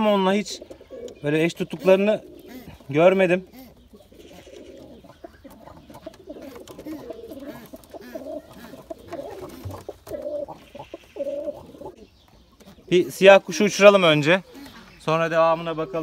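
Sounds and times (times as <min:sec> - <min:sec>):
pigeons cooing: 0:00.0 - 0:16.0.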